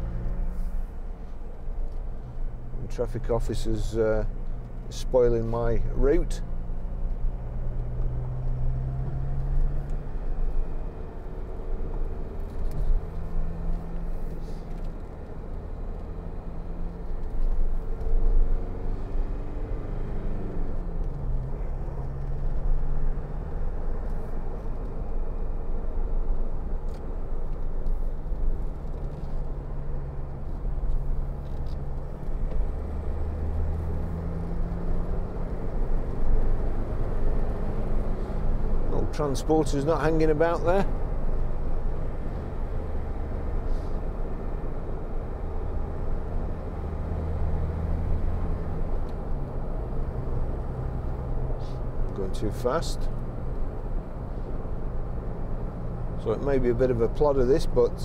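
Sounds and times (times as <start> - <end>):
diesel engine drone: 0.0 - 58.0
road and tyre rumble: 0.0 - 58.0.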